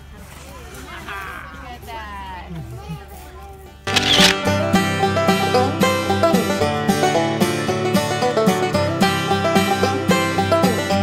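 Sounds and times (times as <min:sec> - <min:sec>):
camera shutter click: 0:03.9 - 0:04.4
upbeat banjo music: 0:03.9 - 0:11.0.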